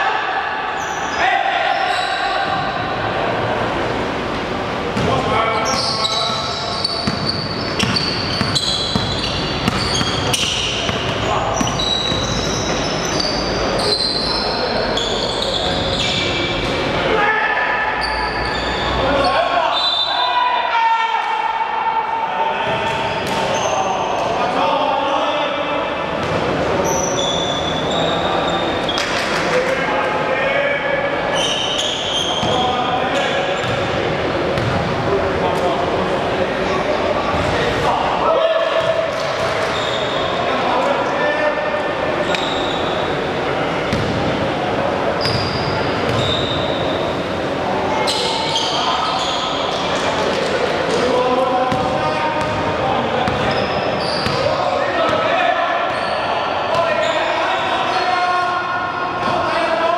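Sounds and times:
players' voices: 0.0 - 59.9
sneakers squeaking: 0.8 - 3.0, 4.8 - 17.0, 17.9 - 20.3, 22.6 - 24.4, 26.2 - 29.5, 31.3 - 35.0, 36.7 - 37.8, 38.7 - 40.5, 42.1 - 51.1, 51.7 - 58.5
basketball bouncing on wooden floor: 7.0 - 12.4.

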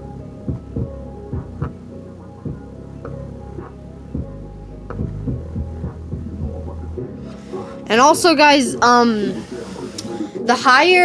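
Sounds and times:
deep bass notes: 0.0 - 8.3
sharp beat hits: 3.6 - 7.3.

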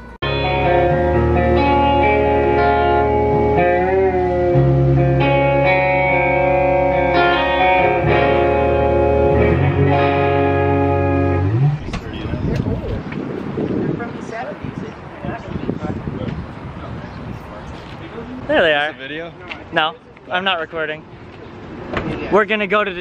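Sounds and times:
electric guitar chords: 0.0 - 13.0
wind noise on microphone: 7.8 - 18.4.

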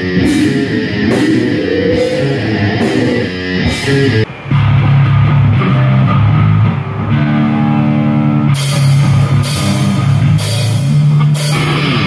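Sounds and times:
held low guitar chords: 0.0 - 12.0
rock band playing: 0.0 - 12.0.

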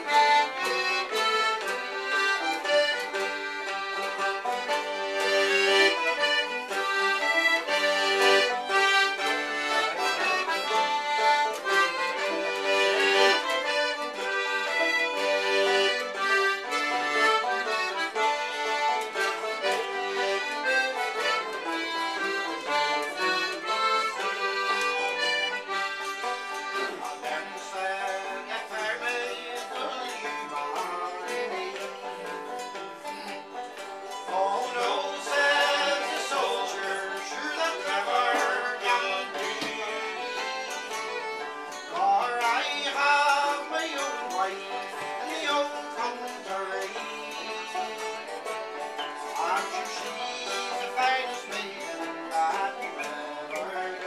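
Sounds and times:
accordion melody: 0.0 - 54.0
mandolin: 0.0 - 54.0
strummed acoustic guitar: 0.0 - 54.0.

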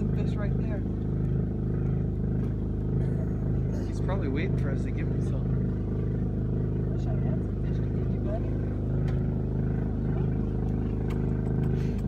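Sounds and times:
generator droning: 0.0 - 12.0.

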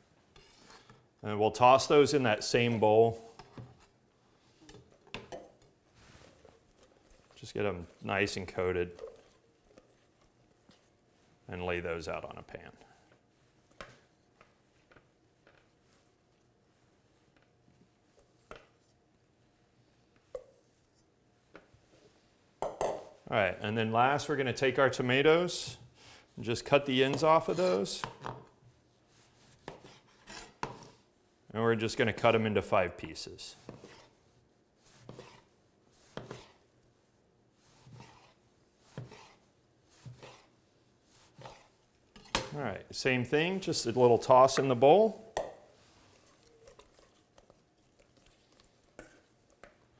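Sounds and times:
knife slicing on cutting board: 36.1 - 36.6, 37.8 - 39.4.

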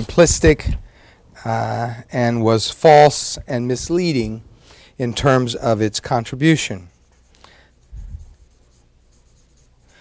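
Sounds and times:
faint writing sounds: 5.1 - 10.0.

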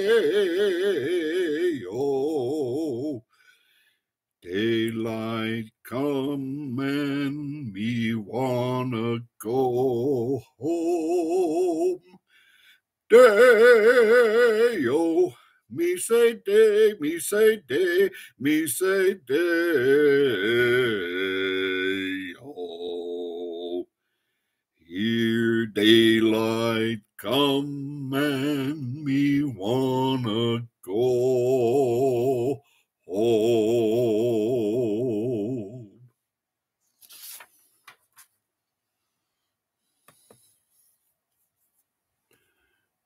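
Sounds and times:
man singing a cappella: 0.0 - 3.4, 4.4 - 12.2, 13.1 - 23.9, 24.8 - 36.1
soft rustling: 36.8 - 38.5.

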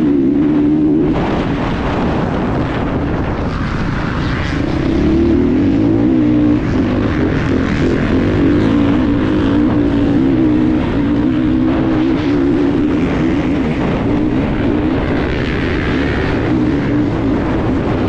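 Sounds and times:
motorcycle engine under throttle: 0.0 - 18.0.

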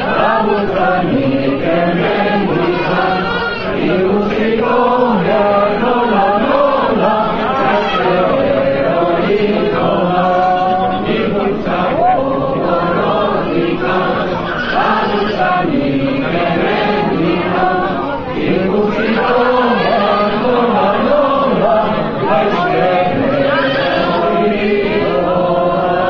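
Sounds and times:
crowd singing in chorus: 0.0 - 26.0.

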